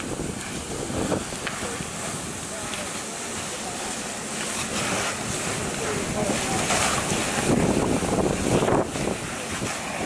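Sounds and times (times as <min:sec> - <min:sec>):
fire hose spraying water: 0:00.0 - 0:10.0.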